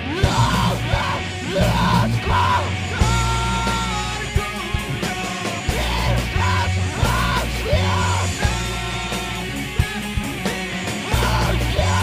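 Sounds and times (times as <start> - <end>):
bass guitars and drums: 0.0 - 12.0
yelled vocals: 0.0 - 12.0.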